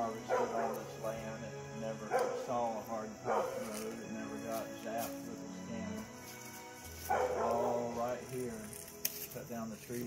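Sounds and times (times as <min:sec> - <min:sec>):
background music: 0:00.0 - 0:10.0
dog barking: 0:00.2 - 0:00.9, 0:02.0 - 0:02.5, 0:03.2 - 0:03.7, 0:07.1 - 0:07.8.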